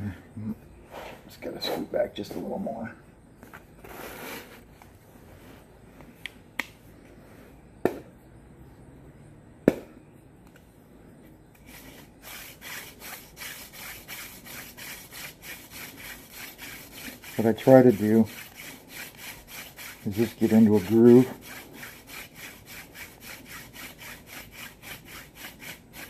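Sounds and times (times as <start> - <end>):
hand drill spindle rubbing wood: 11.6 - 26.0.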